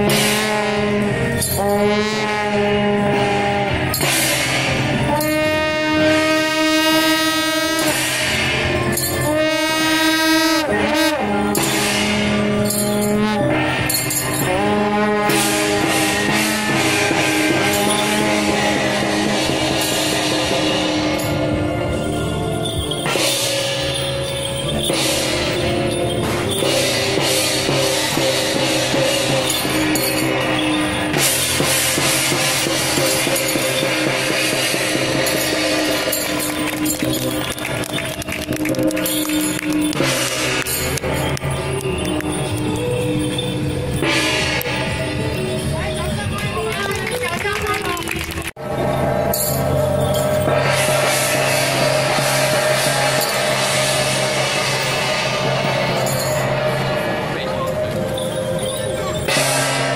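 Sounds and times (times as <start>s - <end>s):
cymbal crashes: 0.0s - 46.2s, 48.6s - 59.9s
gong crashes: 0.0s - 46.2s, 48.6s - 59.9s
reedy double-reed horn notes: 0.0s - 47.2s, 48.6s - 59.9s
percussion beats: 0.0s - 59.9s.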